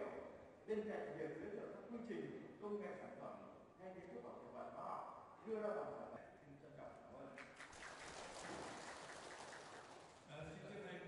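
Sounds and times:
audience applauding: 7.6 - 10.3.

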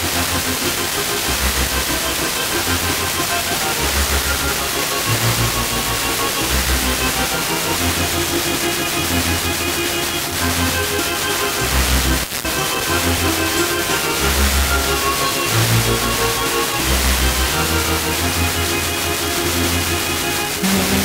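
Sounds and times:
music on a car radio: 0.0 - 21.0
radio hiss and static: 0.0 - 21.0.

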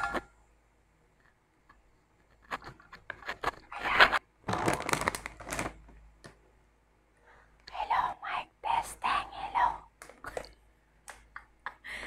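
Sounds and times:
plastic snack bag rustling: 3.2 - 6.0.

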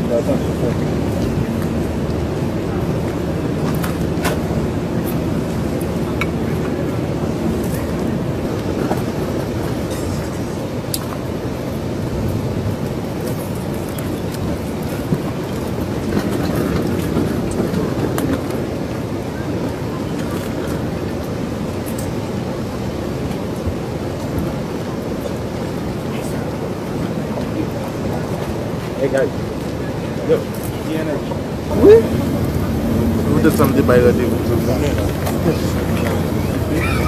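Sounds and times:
wind on microphone: 0.0 - 37.0
low rumble: 31.6 - 37.0.

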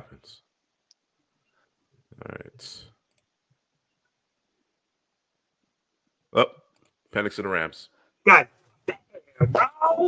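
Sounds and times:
man exclaiming: 9.4 - 10.0.

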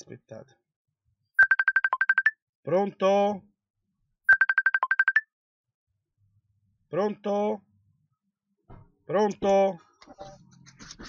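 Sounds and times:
short high telephone beeps: 1.4 - 2.4, 4.3 - 5.2.

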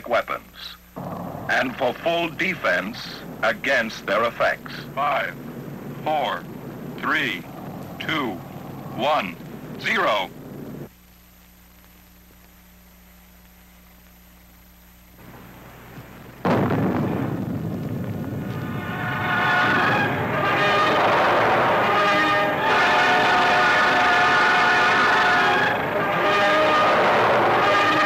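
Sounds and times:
low soundtrack hum: 0.8 - 27.4
loud explosion boom: 1.0 - 2.4, 16.4 - 21.8.

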